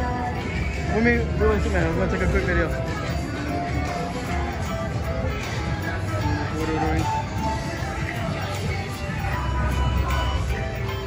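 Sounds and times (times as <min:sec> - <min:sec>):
music playing: 0:00.0 - 0:11.0.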